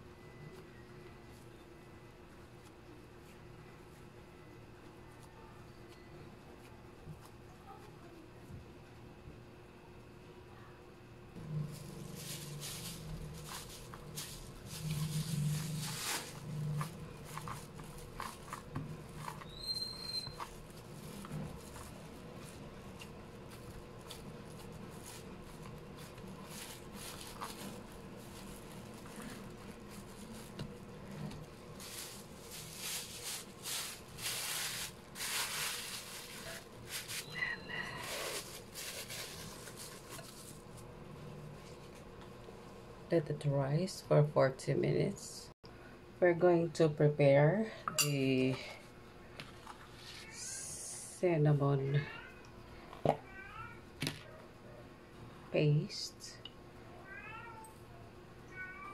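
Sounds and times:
hands kneading dough: 11.4s - 42.2s
glass bowl clink: 47.9s - 48.3s.

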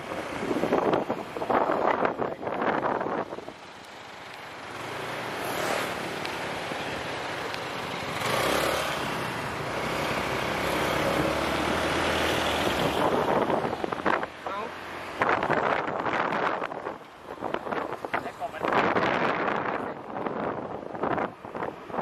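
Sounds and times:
motorcycle engine and road noise: 0.0s - 22.0s.

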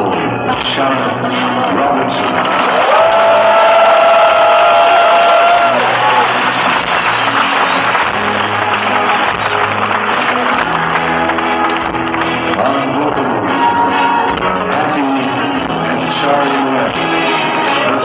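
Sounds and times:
audience applauding and cheering: 1.3s - 18.0s
live band music: 4.4s - 18.0s.

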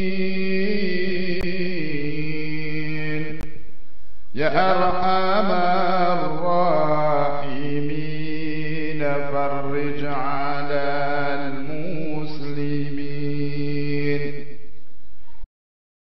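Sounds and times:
person chanting religious invocation: 0.0s - 3.5s, 4.4s - 14.7s.

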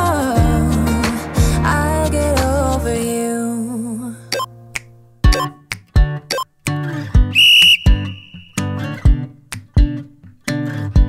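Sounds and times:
pop music with steady beat: 0.0s - 4.5s
high whistle-like signal tone: 7.4s - 8.7s.

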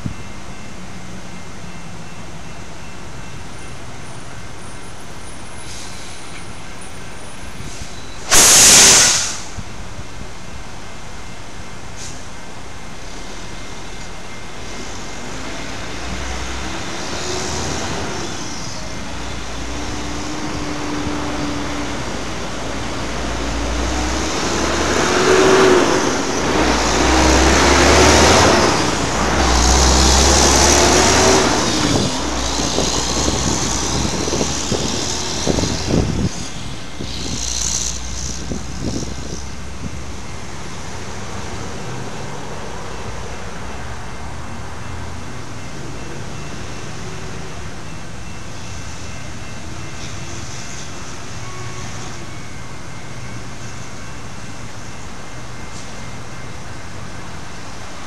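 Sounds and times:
motor vehicle passing: 23.2s - 39.5s.

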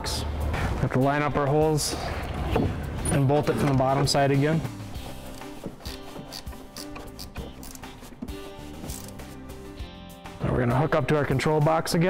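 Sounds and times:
background music sustained tones: 0.0s - 12.0s
narration: 3.0s - 4.8s.

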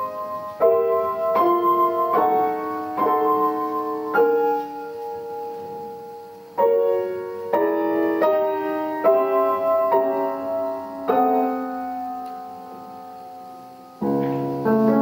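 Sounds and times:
grand piano chords: 0.0s - 15.0s.

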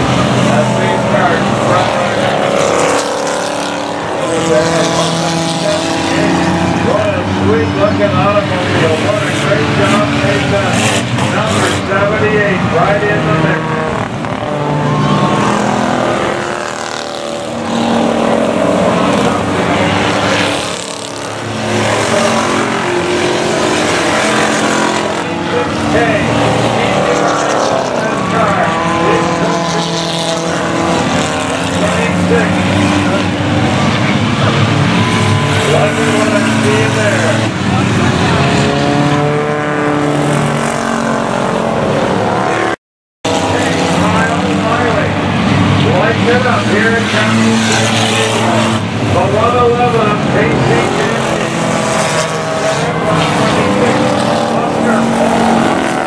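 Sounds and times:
race car engines passing: 0.0s - 56.0s.

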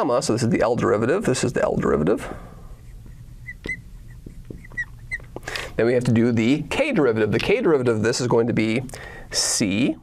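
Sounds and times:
marker squeaking on glass: 2.7s - 5.5s
marker tip tapping: 3.0s - 5.5s.

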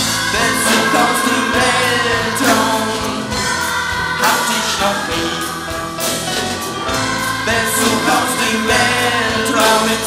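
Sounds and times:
choir singing: 0.0s - 10.0s
pop-rock band playing: 0.0s - 10.0s.

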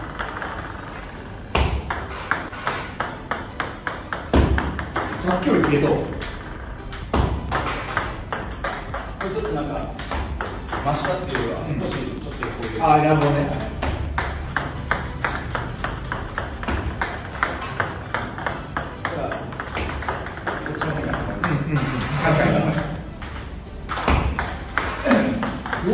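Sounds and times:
ball bouncing on table: 0.0s - 25.9s
balls knocking together: 0.0s - 25.9s
paddle striking ping pong ball: 1.5s - 25.9s.

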